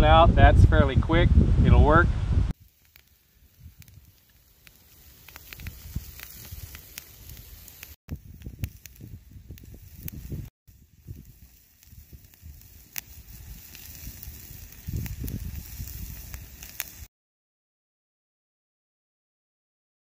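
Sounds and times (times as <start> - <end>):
low rumbling gusts: 0.0 - 2.5, 8.1 - 16.7
campfire crackling and popping: 2.5 - 17.1
meat patty sizzling on grill: 2.5 - 17.1.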